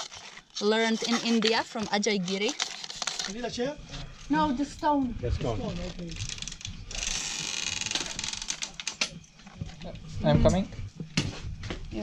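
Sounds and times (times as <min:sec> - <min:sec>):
rapid rasping rattle: 0:00.0 - 0:03.5, 0:05.7 - 0:09.0.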